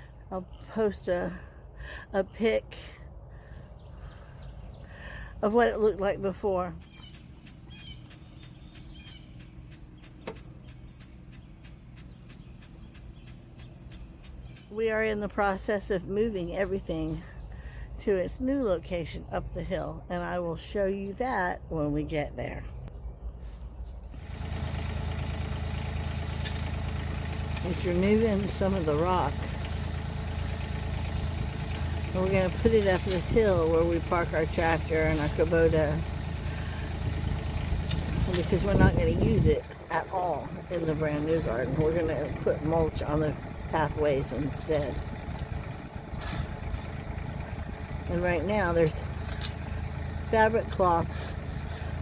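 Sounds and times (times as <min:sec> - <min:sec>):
tractor engine running under load: 0:00.0 - 0:21.3, 0:23.7 - 0:52.0
front loader working gravel: 0:23.7 - 0:52.0.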